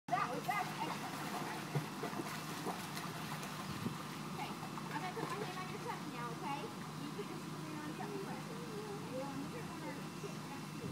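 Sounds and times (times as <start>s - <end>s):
light water splashing: 0.3s - 7.1s.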